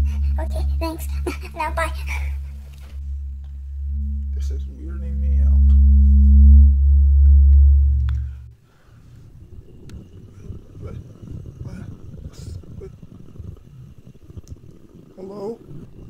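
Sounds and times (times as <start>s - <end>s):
loud low droning hum: 0.0s - 8.6s.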